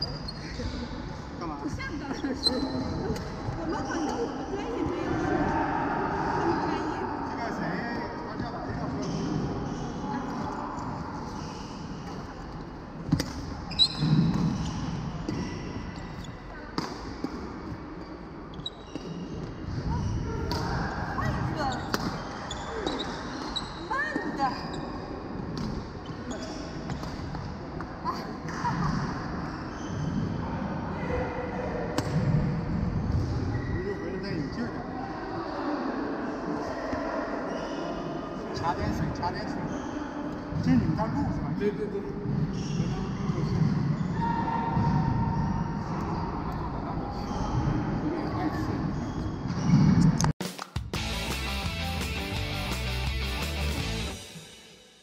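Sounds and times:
sneakers squeaking on wooden floor: 2.1 - 4.2, 8.5 - 16.6, 17.3 - 20.5, 21.2 - 27.4, 29.4 - 30.4, 39.5 - 40.8, 42.3 - 45.0.

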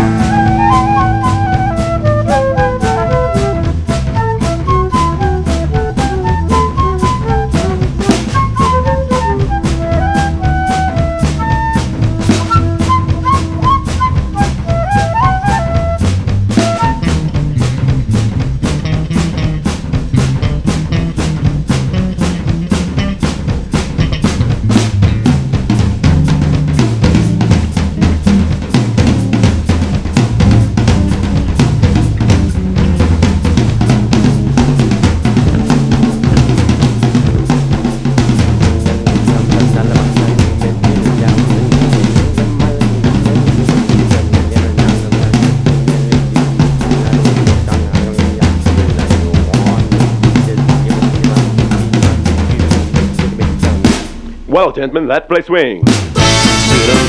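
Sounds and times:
bass line: 0.0 - 57.0
busy drum kit: 0.0 - 57.0.

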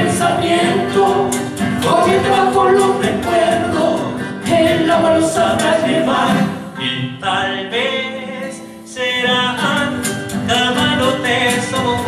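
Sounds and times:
acoustic guitar: 0.0 - 12.0
voices singing together: 0.0 - 12.0.

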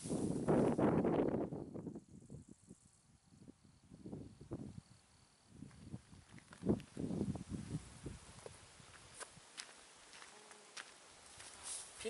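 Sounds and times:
insect chirping: 0.0 - 12.0
footsteps through dry grass: 5.7 - 12.0.

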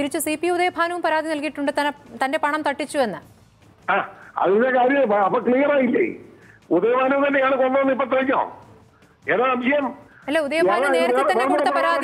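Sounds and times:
woman talking: 10.3 - 12.0.

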